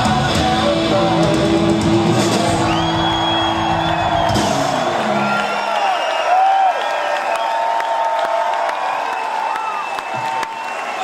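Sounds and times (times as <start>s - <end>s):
crowd cheering and whooping: 2.0s - 11.0s.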